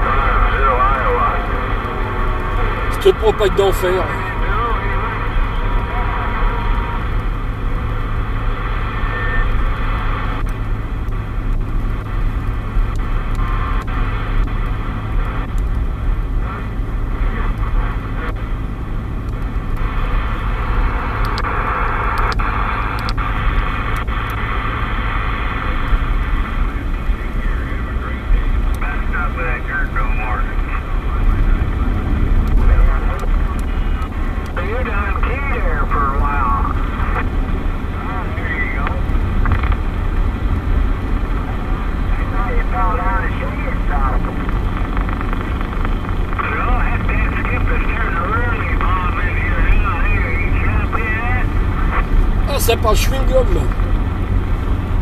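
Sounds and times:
distorted radio voices: 0:00.0 - 0:07.2, 0:19.8 - 0:39.9, 0:41.2 - 0:54.1
car rumble: 0:00.0 - 0:55.0
radio static and band noise: 0:00.0 - 0:55.0.

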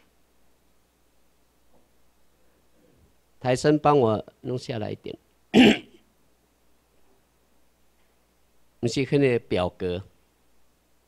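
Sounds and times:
man clearing his throat: 0:05.6 - 0:06.0.

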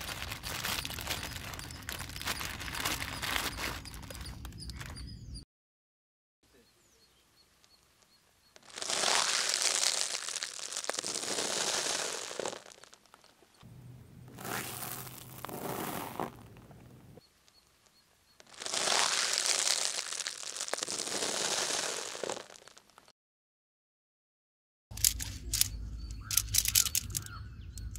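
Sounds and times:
tyre crunching a plastic packet: 0:00.0 - 0:04.9, 0:08.6 - 0:13.0, 0:14.3 - 0:16.6, 0:18.4 - 0:22.8
low hum: 0:13.6 - 0:17.2.

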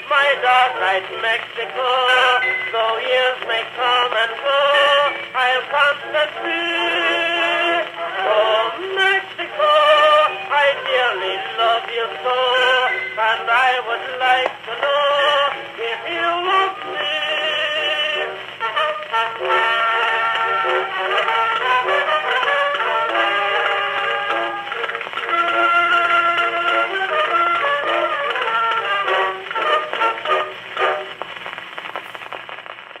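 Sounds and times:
phonograph instrumental music: 0:00.0 - 0:33.0
record surface crackle and hiss: 0:00.0 - 0:33.0
orchestral accompaniment: 0:16.9 - 0:31.2.

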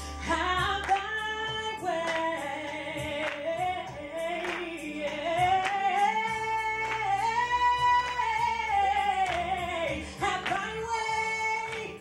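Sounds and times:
instrumental accompaniment with beat: 0:00.0 - 0:12.0
woman singing gospel: 0:00.0 - 0:12.0.

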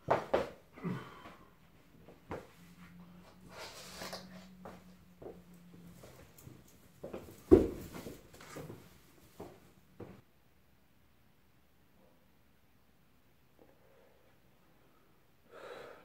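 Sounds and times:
clothing rustle: 0:05.8 - 0:09.8
footsteps on laminate floor: 0:07.0 - 0:10.2.

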